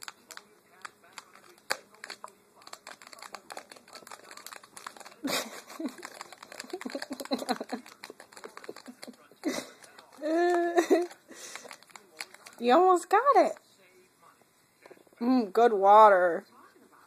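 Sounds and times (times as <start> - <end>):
cat scratching inside a cup: 0.0 - 13.6.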